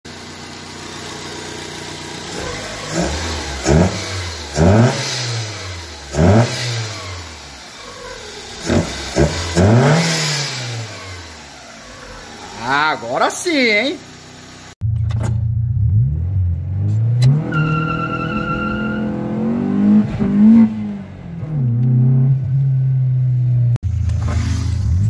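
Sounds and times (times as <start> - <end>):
car engine idling and revving: 0.1 - 25.0.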